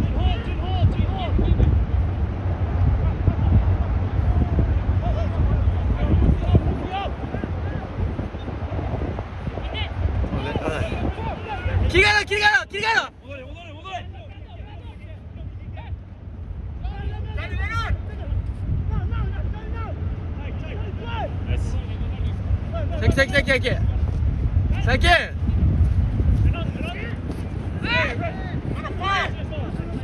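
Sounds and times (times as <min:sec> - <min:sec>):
steady low rumble: 0:00.0 - 0:30.0
players shouting calls: 0:09.6 - 0:16.0, 0:16.7 - 0:23.8.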